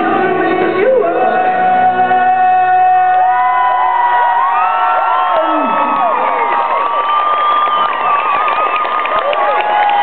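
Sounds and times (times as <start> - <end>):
acoustic guitar: 0.0 - 3.6
man singing into a microphone: 0.0 - 4.3
crowd cheering and whooping: 3.2 - 10.0.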